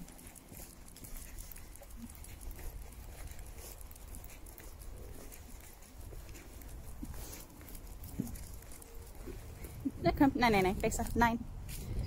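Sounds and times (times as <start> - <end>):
footsteps on asphalt: 0.0 - 12.0.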